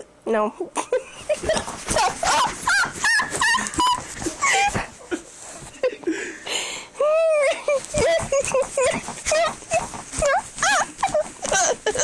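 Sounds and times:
person squealing: 0:07.0 - 0:12.0.

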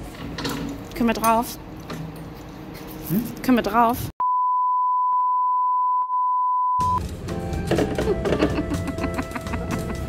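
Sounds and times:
censor bleep tone: 0:04.2 - 0:07.0.

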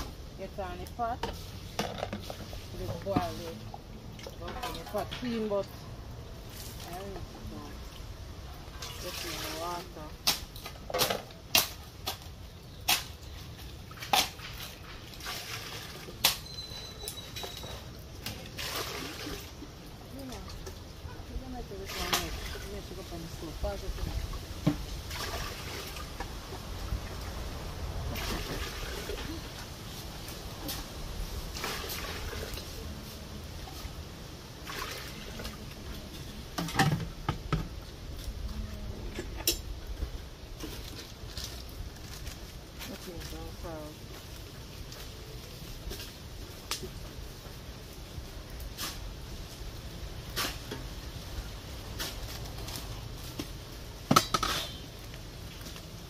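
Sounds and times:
water sloshing: 0:00.0 - 0:47.5
pots and utensils clinking: 0:54.1 - 0:54.9.

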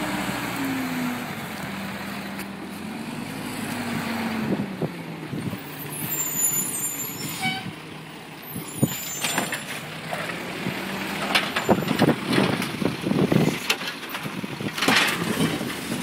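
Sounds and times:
short squeal: 0:05.8 - 0:07.7, 0:08.6 - 0:09.6.

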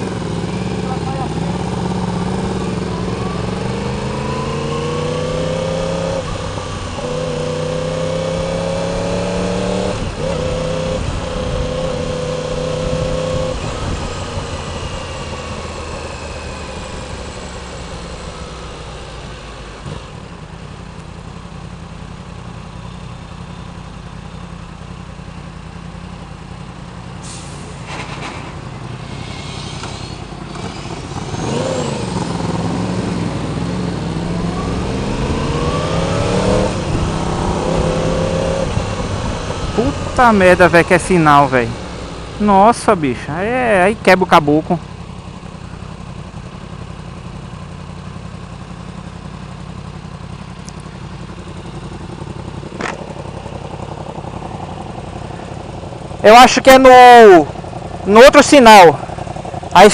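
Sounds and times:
road and wind noise: 0:00.0 - 0:59.9
motorcycle engine upshifting: 0:27.6 - 0:46.2, 0:50.3 - 0:56.2.

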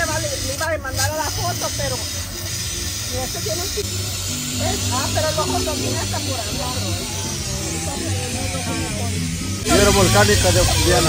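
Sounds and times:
background music with bass: 0:00.0 - 0:11.0
gas torch flame hissing: 0:00.0 - 0:11.0
faint voices: 0:00.6 - 0:11.0.

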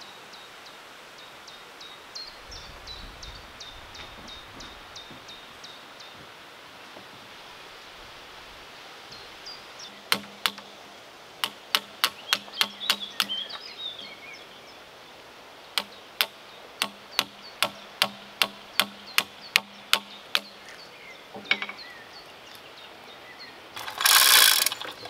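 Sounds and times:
birds chirping: 0:01.5 - 0:25.0
hand tool striking log: 0:10.1 - 0:10.7, 0:11.4 - 0:13.4, 0:15.8 - 0:20.5.

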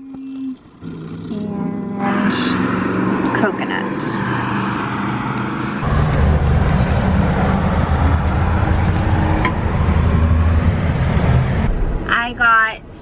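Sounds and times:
road traffic: 0:00.0 - 0:13.0
vehicle engine rumbling: 0:00.0 - 0:13.0.

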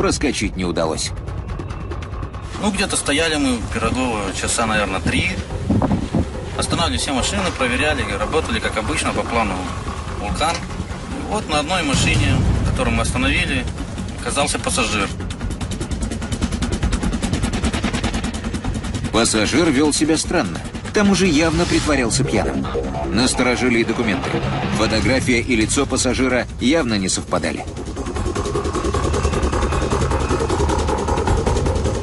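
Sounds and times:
car engine idling: 0:00.3 - 0:32.0
fast clatter of sharp ticks: 0:01.2 - 0:21.3, 0:25.2 - 0:32.0.

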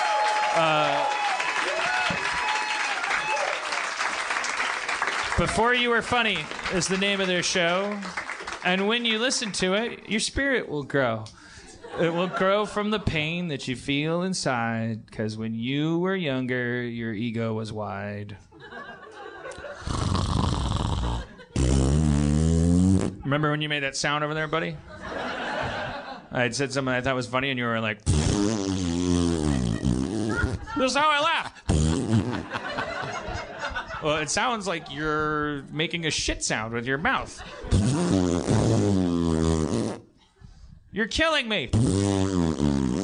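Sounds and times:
man snorting: 0:19.8 - 0:23.2
man making mouth fart noise: 0:19.8 - 0:23.3, 0:28.0 - 0:30.8, 0:31.6 - 0:32.6, 0:37.7 - 0:40.2, 0:41.7 - 0:43.0.

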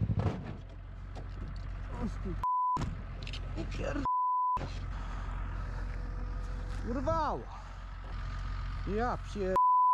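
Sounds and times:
vehicle rumble: 0:00.0 - 0:09.7
censor bleep: 0:09.6 - 0:09.9.

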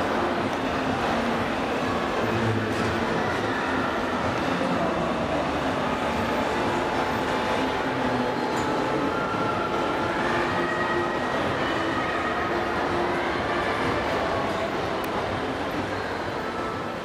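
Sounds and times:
busy exhibition hall din: 0:00.0 - 0:17.0.

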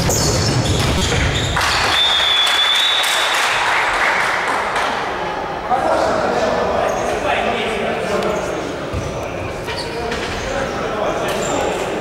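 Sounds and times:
referee's whistle blast: 0:01.4 - 0:03.4
spectators applauding: 0:01.6 - 0:05.0.

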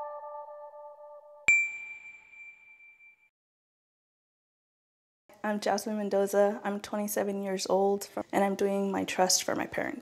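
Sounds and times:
soft synth music: 0:00.0 - 0:01.9
bright electronic ding: 0:01.5 - 0:03.3.

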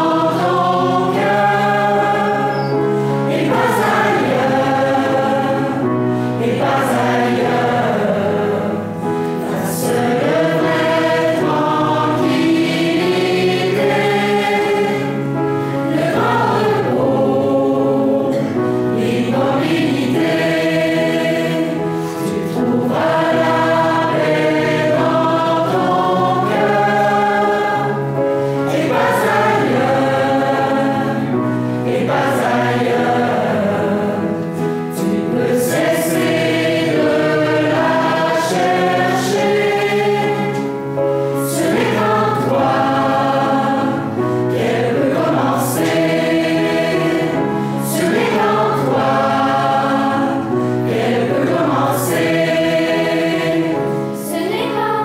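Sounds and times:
mixed choir singing: 0:00.0 - 0:55.0
piano accompaniment: 0:00.0 - 0:55.0.

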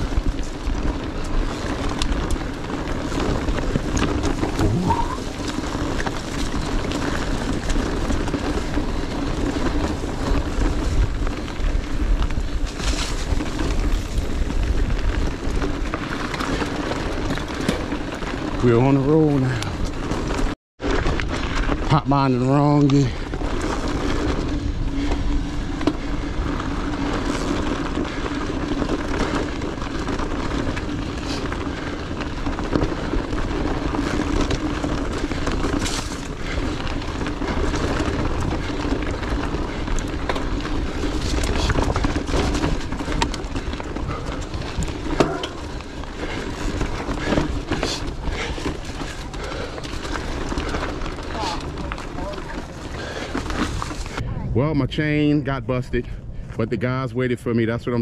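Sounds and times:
wind rushing over microphone: 0:00.0 - 0:22.1
bike rattling over rocks: 0:00.0 - 0:54.2
tyres crunching on gravel: 0:00.0 - 0:54.2.

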